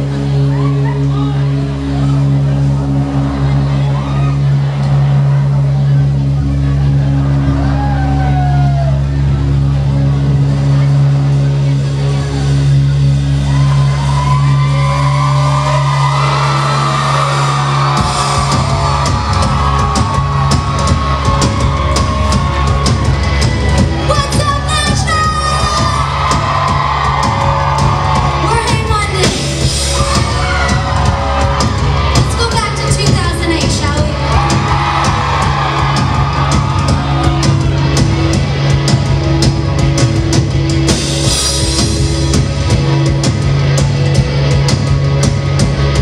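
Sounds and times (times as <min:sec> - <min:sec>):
audience yelling and whooping: 0:00.0 - 0:11.0, 0:12.0 - 0:44.6
pop-punk band playing: 0:00.0 - 0:46.0.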